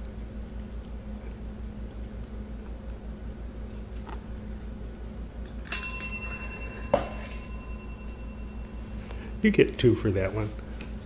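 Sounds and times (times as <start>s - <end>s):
desk service bell ding: 5.7s - 9.0s.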